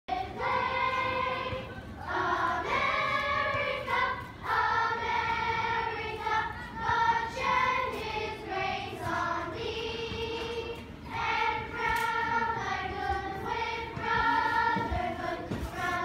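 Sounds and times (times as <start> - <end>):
children's choir singing: 0.1 - 16.0.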